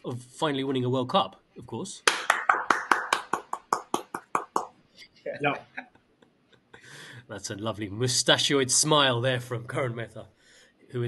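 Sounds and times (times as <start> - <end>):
person clapping hands: 2.1 - 4.8.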